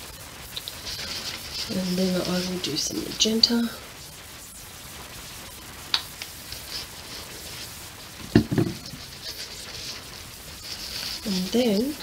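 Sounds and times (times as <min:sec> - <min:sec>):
paint sputtering from squeeze bottle: 0:00.4 - 0:04.4, 0:05.2 - 0:12.0
plastic bottle knocking on table: 0:08.3 - 0:08.9.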